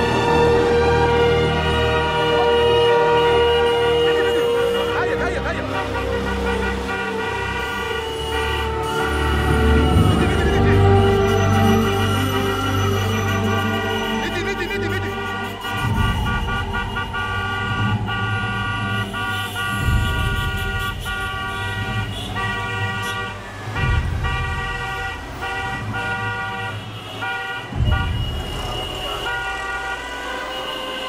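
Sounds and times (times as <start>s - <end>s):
faint siren: 0.0s - 5.0s, 6.6s - 20.6s, 28.2s - 31.0s
car horns honking: 0.0s - 31.0s.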